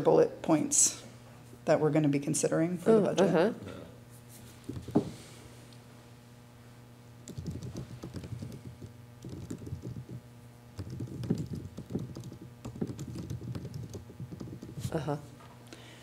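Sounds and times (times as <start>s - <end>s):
faint electrical hum: 0.0s - 16.0s
laptop keyboard typing: 7.2s - 10.2s, 10.8s - 15.0s.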